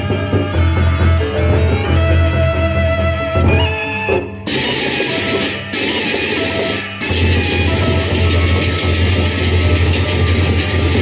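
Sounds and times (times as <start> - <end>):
barrel drums beating: 4.2 - 11.0
clashing hand cymbals: 4.5 - 11.0.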